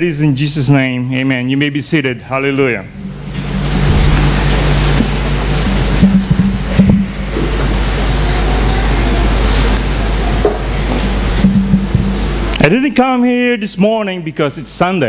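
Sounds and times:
soft low music notes: 0.0s - 13.2s
knocks and scrapes: 3.0s - 7.1s.

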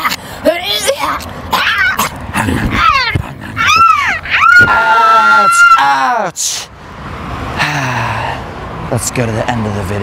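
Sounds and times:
person yelping and whimpering: 1.5s - 6.4s.

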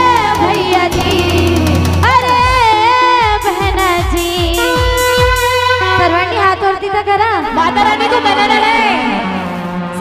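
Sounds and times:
steady drum beat: 0.0s - 6.7s
woman singing: 0.0s - 9.4s
keyboard melody: 0.0s - 10.0s.

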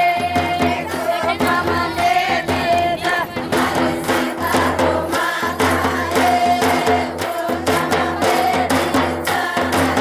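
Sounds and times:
drum struck with stick: 0.0s - 10.0s
women singing folk song: 0.0s - 10.0s.

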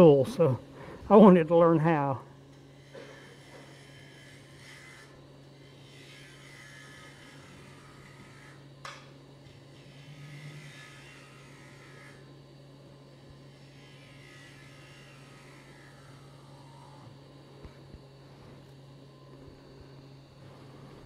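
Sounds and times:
wood lathe humming: 0.0s - 21.0s
turning tool cutting wood: 2.7s - 8.6s, 9.7s - 12.3s.

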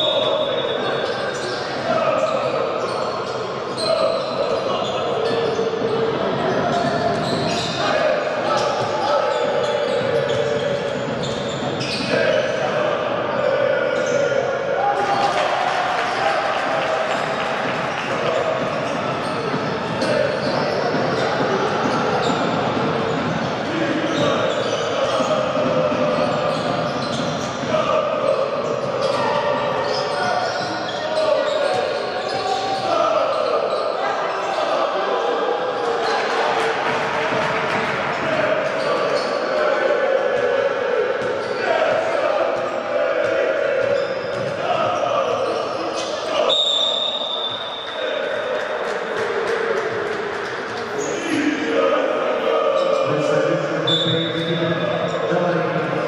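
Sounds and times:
crowd voices and chanting: 0.0s - 56.0s.

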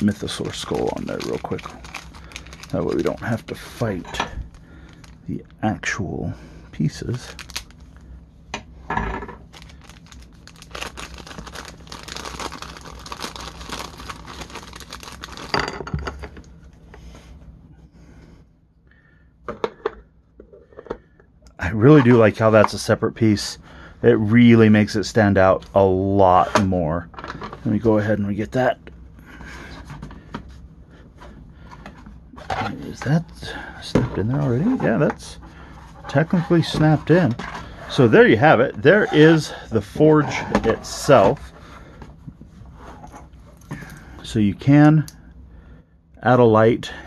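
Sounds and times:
plastic bag crinkling and tearing: 0.0s - 5.2s, 6.9s - 7.9s, 9.5s - 15.6s.

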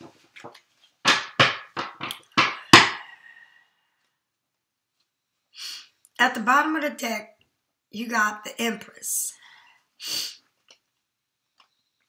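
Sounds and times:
cards knocked on tabletop: 0.4s - 3.0s.

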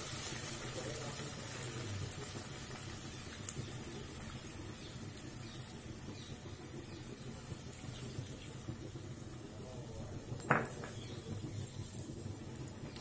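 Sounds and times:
sizzling and bubbling in a pan: 0.0s - 13.0s.

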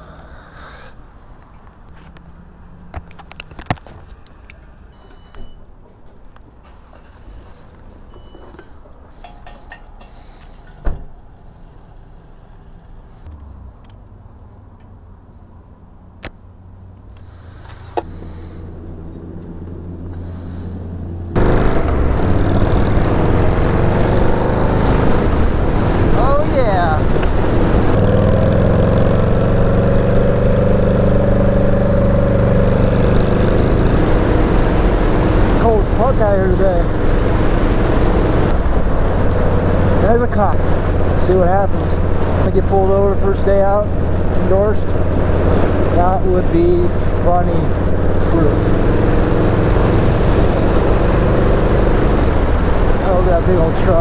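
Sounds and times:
motorcycle engine riding: 17.5s - 54.0s
loud wind noise: 21.3s - 47.1s, 47.7s - 54.0s.

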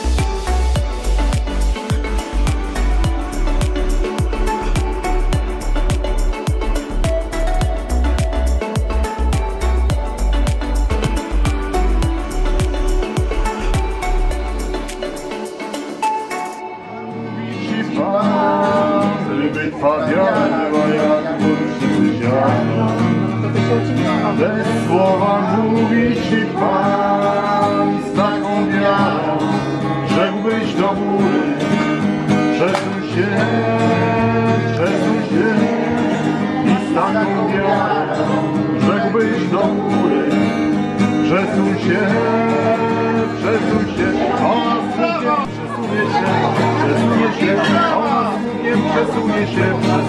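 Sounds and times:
person singing: 0.0s - 50.0s
strummed acoustic guitar: 0.0s - 50.0s.

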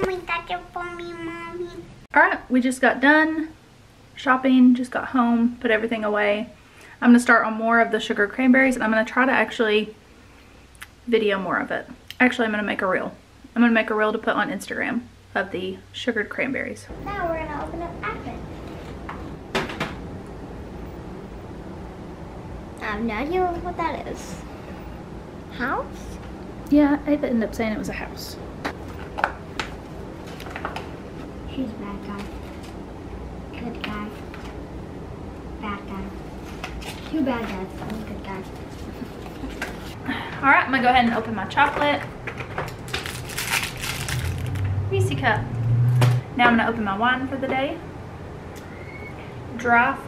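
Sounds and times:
plastic wrapper crinkling: 42.7s - 44.7s.

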